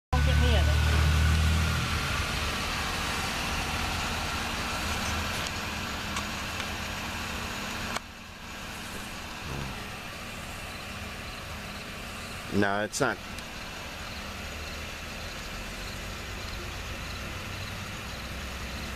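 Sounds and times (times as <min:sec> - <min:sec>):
motor vehicle rumbling: 0:00.1 - 0:18.9
steady traffic noise: 0:00.1 - 0:18.9.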